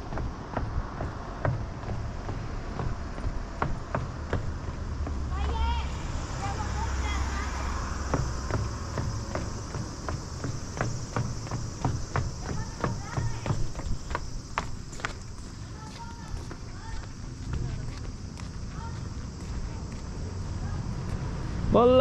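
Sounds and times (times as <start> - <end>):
footsteps running: 0.0 - 20.2.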